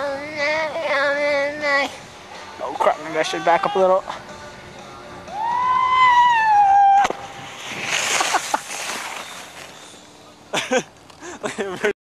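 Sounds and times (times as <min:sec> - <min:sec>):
person yelling: 0:03.2 - 0:04.0
rough hiss: 0:07.0 - 0:11.5.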